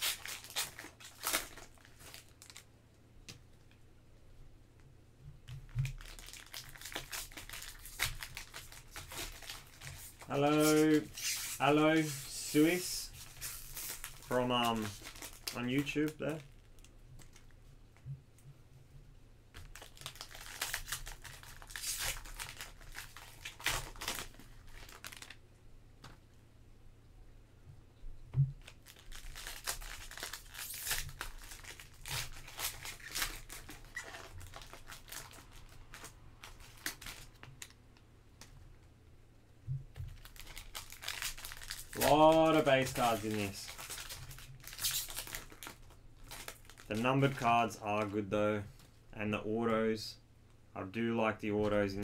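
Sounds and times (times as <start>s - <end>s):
foil packs crinkling and tearing: 0.0s - 2.7s, 5.8s - 17.5s, 19.6s - 25.4s, 28.6s - 37.8s, 40.0s - 48.2s.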